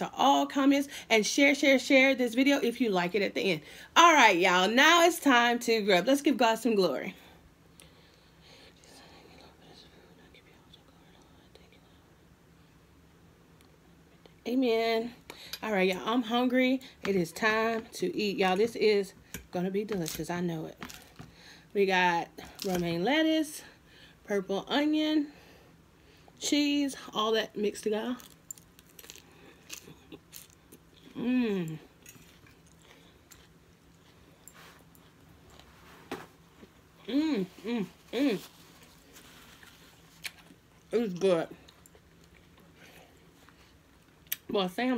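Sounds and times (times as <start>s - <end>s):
chewing crisp lettuce: 28.2s - 35.8s, 38.4s - 44.4s.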